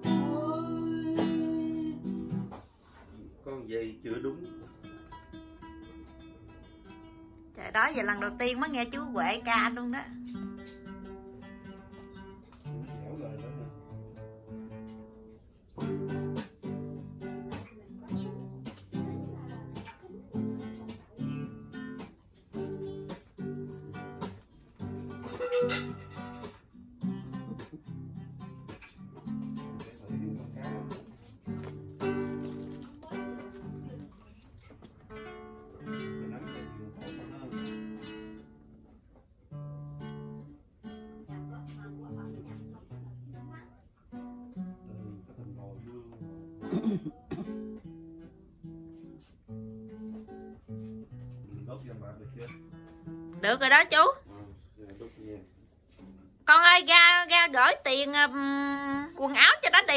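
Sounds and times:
acoustic guitar strumming: 0.0 - 54.5, 55.7 - 59.9.

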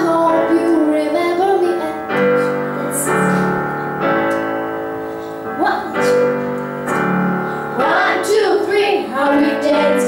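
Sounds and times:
girls singing pop song: 0.0 - 3.5, 7.8 - 10.0
piano and keyboard backing track: 0.0 - 10.0.

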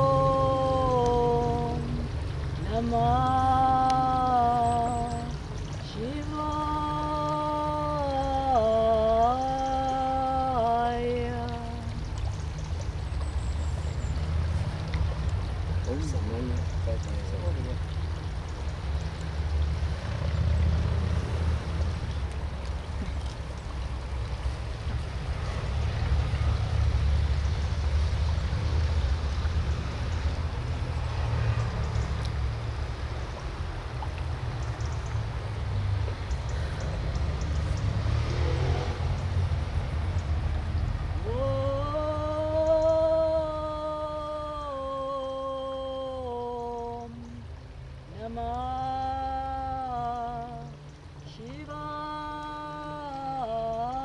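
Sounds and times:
humming tone: 41.2 - 54.0.

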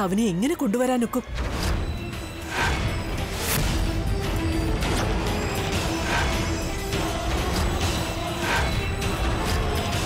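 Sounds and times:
dramatic low drone score: 1.4 - 10.0.

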